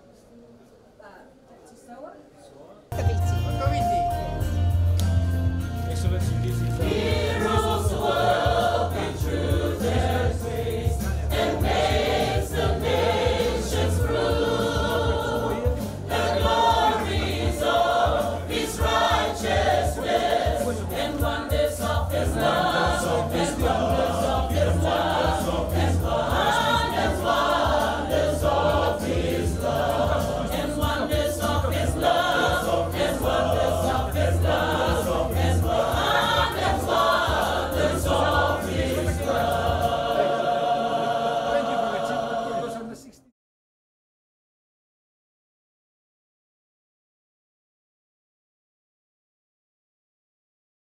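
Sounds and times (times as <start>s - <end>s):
large choir singing: 6.6s - 43.1s.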